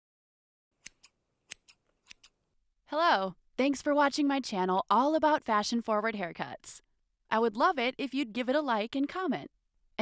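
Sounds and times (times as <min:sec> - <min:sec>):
scissors snipping: 0:00.8 - 0:02.4.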